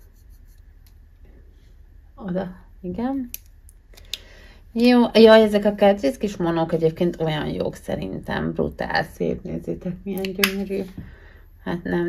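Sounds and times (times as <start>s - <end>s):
faint rubbing on skin: 0.0s - 0.9s
low steady hum: 0.0s - 12.0s.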